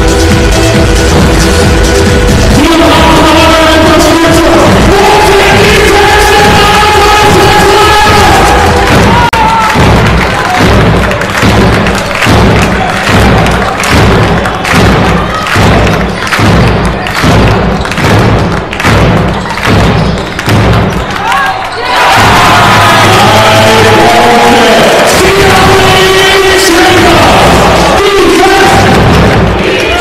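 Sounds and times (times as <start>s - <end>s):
music or singing: 0.0s - 11.4s, 22.0s - 30.0s
crowd noise: 0.0s - 30.0s
rhythmic drum beat: 0.0s - 30.0s.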